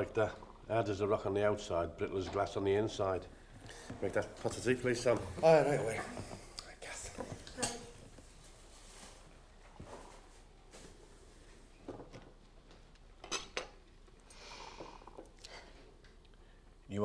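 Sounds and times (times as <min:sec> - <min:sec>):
cups and cutlery clinking: 0:07.4 - 0:08.1, 0:13.2 - 0:13.8.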